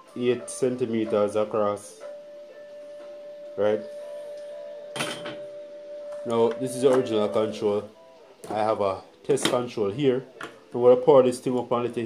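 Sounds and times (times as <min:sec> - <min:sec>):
objects clattering on a tabletop: 0:05.0 - 0:05.4.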